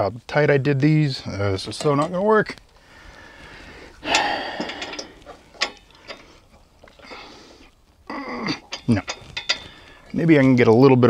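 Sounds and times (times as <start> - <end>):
wrench clicking and scraping on metal: 4.1 - 7.0, 8.6 - 10.6.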